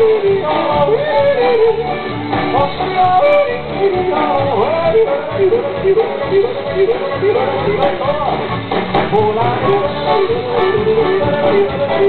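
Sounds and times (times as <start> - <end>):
instrumental accompaniment: 0.0 - 12.0
person yodeling: 2.6 - 8.4.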